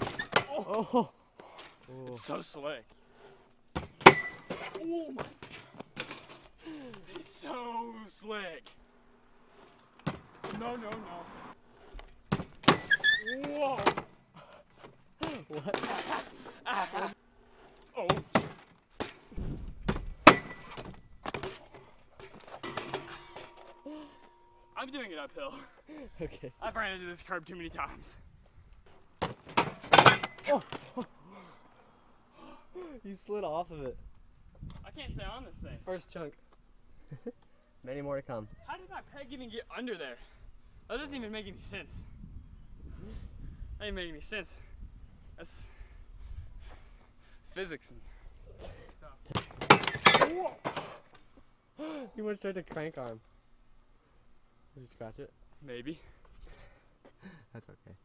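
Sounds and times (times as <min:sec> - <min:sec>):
bike landing on asphalt: 0:03.7 - 0:06.5, 0:09.7 - 0:11.3, 0:12.0 - 0:14.2, 0:18.1 - 0:23.6, 0:29.2 - 0:31.0, 0:49.3 - 0:51.1
bike knocks and rattles: 0:03.7 - 0:06.6, 0:09.6 - 0:11.2, 0:11.9 - 0:14.2, 0:14.8 - 0:16.4, 0:17.8 - 0:23.8, 0:28.9 - 0:31.0, 0:49.2 - 0:51.2
man exclaiming: 0:06.7 - 0:08.5, 0:13.3 - 0:13.9
person exclaiming: 0:13.3 - 0:13.9.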